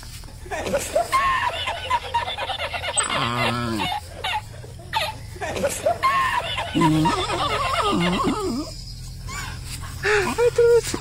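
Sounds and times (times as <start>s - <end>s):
people laughing: 0.4s - 11.0s
people talking: 0.6s - 4.0s, 5.4s - 8.7s, 10.0s - 11.0s.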